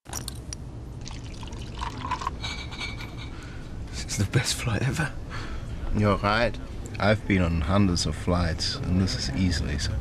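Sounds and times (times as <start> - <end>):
juice pouring into a glass: 0.1 - 2.4.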